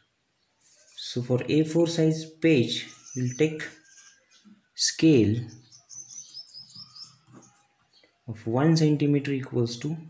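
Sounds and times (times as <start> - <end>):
high-pitched chirping: 2.6 - 4.6, 5.5 - 7.6.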